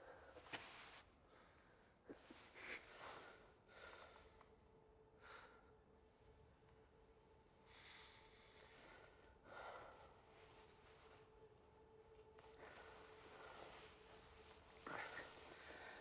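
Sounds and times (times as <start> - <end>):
faint steady hum: 0.0 - 16.0
faint breaths or sighs: 7.6 - 11.3, 12.4 - 16.0.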